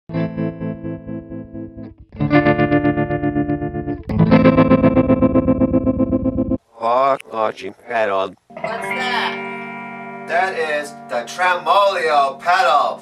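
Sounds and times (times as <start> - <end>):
distorted electric guitar chords: 0.1 - 6.6, 8.5 - 13.0.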